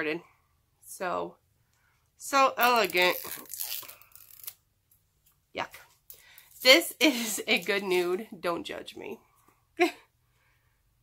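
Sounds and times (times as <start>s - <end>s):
woman speaking: 2.2s - 3.5s, 5.6s - 5.9s, 6.6s - 9.2s.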